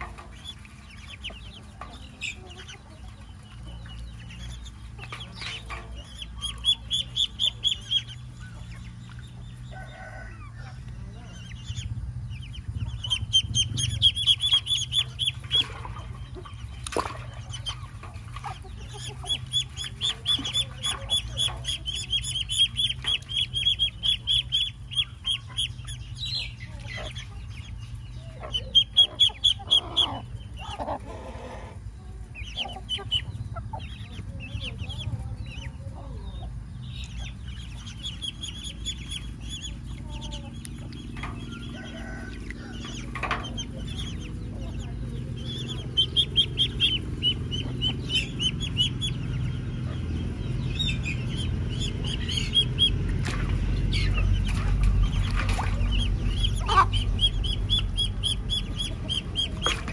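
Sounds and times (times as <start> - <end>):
ducklings peeping: 0.0 - 59.9.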